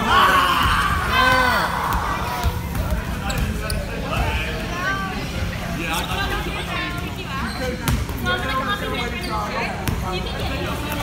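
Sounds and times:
voices in gym: 0:00.0 - 0:11.0.

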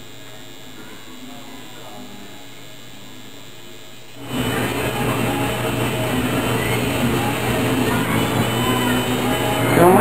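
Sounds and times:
tattoo machine buzzing: 0:04.1 - 0:10.0.

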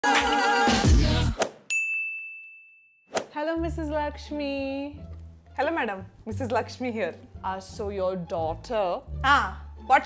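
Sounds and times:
bell-like ding: 0:01.7 - 0:03.1.

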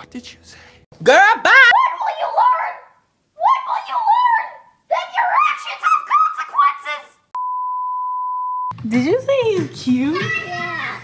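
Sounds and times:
electronic censor beep: 0:07.4 - 0:08.7.

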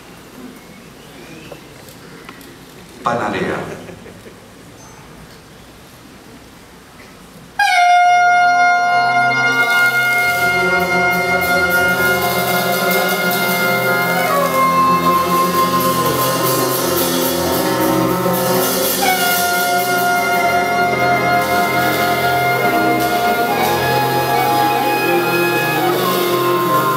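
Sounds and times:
cymbals: 0:07.6 - 0:26.9
saxophones holding long notes: 0:07.6 - 0:26.9
double bass: 0:07.7 - 0:26.9
piano: 0:08.1 - 0:26.9.

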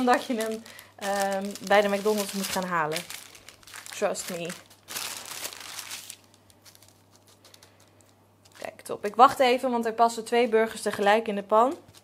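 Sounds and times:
baking paper crinkling: 0:00.0 - 0:08.8, 0:10.3 - 0:12.0.

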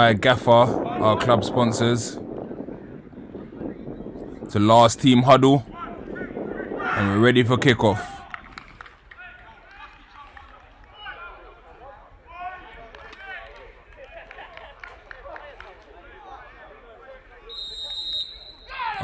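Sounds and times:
referee's whistle: 0:17.5 - 0:19.0.

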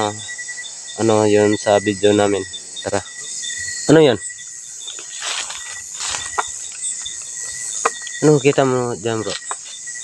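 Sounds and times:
crickets and insects chirping: 0:00.0 - 0:10.0
rustling leafy undergrowth: 0:04.8 - 0:10.0.

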